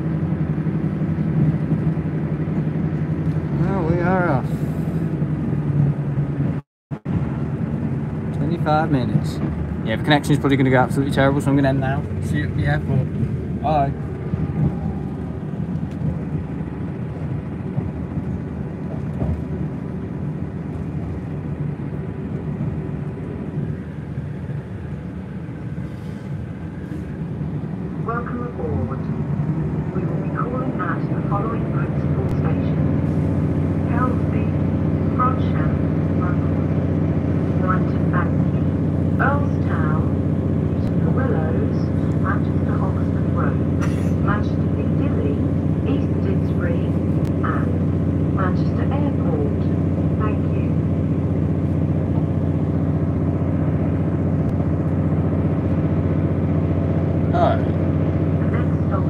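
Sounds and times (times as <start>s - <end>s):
train drone inside carriage: 0.0s - 59.0s
passengers murmuring: 23.6s - 50.8s, 57.3s - 59.0s.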